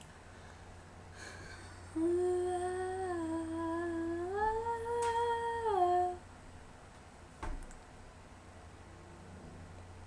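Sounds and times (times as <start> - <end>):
girl humming a melody: 1.2 - 6.2.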